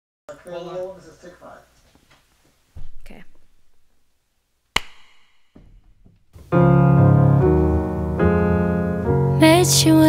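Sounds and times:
sharp knock: 4.8s - 6.6s.

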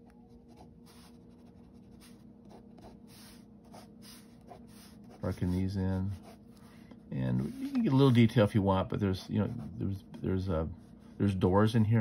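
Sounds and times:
faint steady hum: 0.0s - 12.0s
pen scratching on paper: 0.3s - 6.4s, 7.4s - 11.4s.

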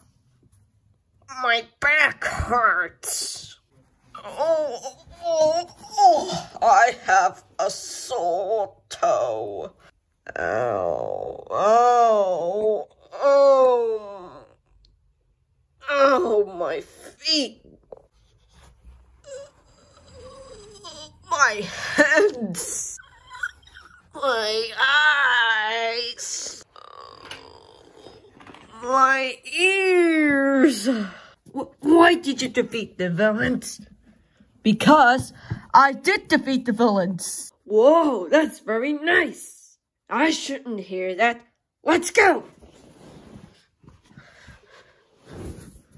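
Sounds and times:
rustling of stuffed toys: 17.8s - 19.7s, 42.2s - 45.9s.

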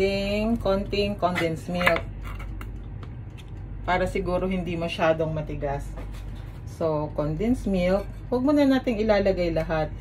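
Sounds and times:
woman speaking: 0.0s - 2.1s, 3.8s - 10.0s
steady low hum: 0.0s - 10.0s.

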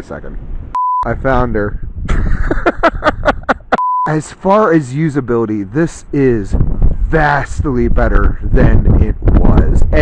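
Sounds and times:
wind rumbling on microphone: 0.0s - 3.8s, 4.4s - 10.0s
censor bleep: 0.8s - 1.1s, 3.8s - 4.2s
man laughing: 2.0s - 4.2s.

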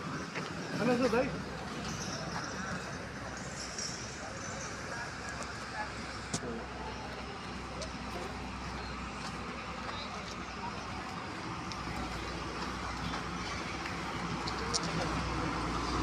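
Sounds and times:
distant traffic: 0.0s - 16.0s
footsteps on gravel: 7.8s - 15.2s.

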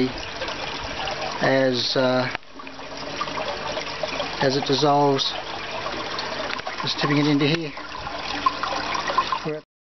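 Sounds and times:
water pouring into a tank: 0.0s - 9.6s.

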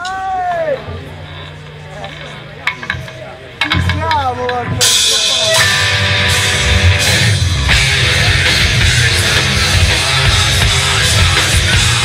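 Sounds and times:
low bass guitar tone: 0.8s - 12.0s.

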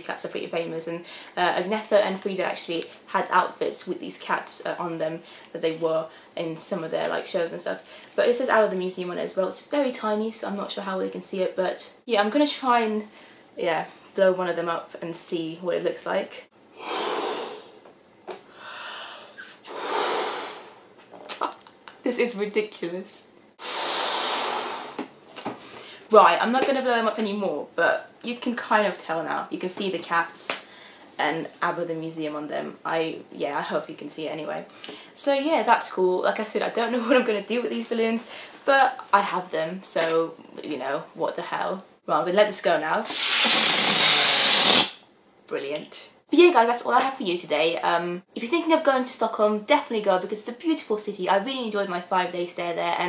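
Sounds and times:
quick breaths drawn in: 16.7s - 17.8s, 18.4s - 20.9s, 23.6s - 25.0s
person blowing up a balloon: 16.8s - 17.8s, 19.2s - 20.9s, 23.6s - 25.1s, 43.0s - 45.0s.

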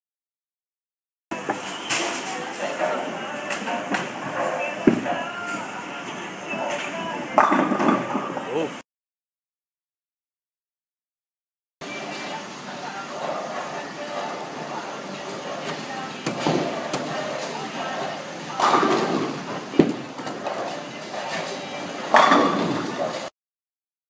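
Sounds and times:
bowling ball crashing into pins: 18.5s - 20.8s, 22.1s - 23.3s
bowling ball knocking onto lane: 18.6s - 20.3s, 22.2s - 23.0s.

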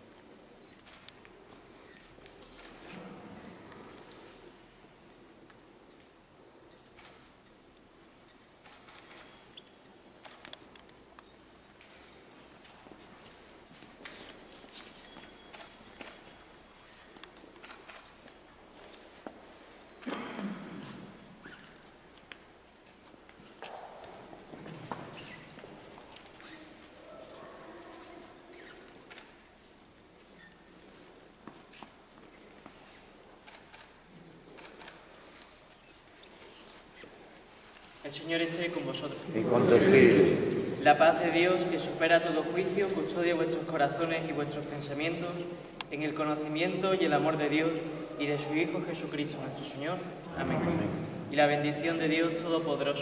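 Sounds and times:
faint footsteps: 0.0s - 48.3s
faint shuffling: 8.4s - 19.9s, 20.6s - 53.0s
high-pitched clink: 15.0s - 16.5s.

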